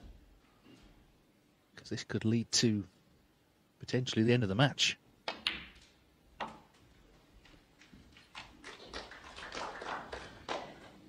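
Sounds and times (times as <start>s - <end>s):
snooker balls clicking: 5.2s - 9.2s.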